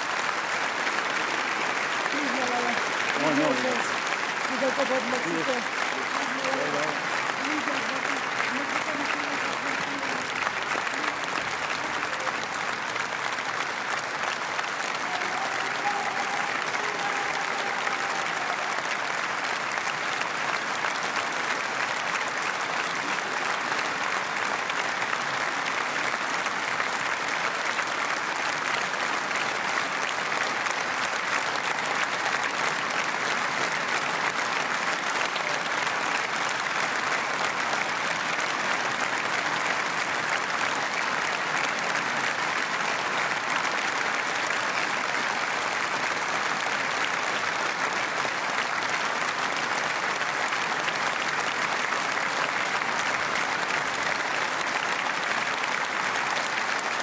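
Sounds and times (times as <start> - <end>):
audience applause: 0.0 - 57.0.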